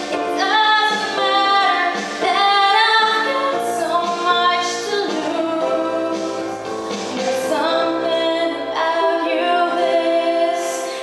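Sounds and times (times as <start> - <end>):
instrumental backing track: 0.0 - 11.0
woman singing pop song: 0.0 - 11.0.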